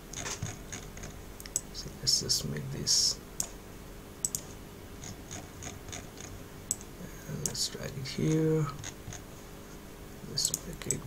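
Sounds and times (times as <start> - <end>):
low steady hum: 0.0 - 11.0
computer mouse clicking: 0.1 - 1.7, 4.2 - 7.6.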